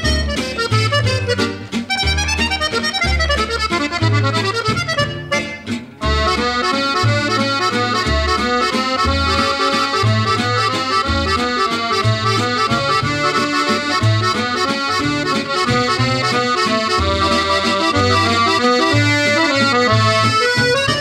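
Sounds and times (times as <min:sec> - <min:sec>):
accordion playing lively tune: 0:00.0 - 0:21.0.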